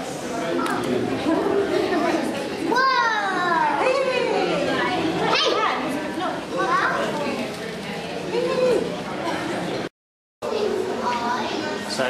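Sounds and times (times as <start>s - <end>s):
children's voices in a crowd: 0.0s - 12.0s.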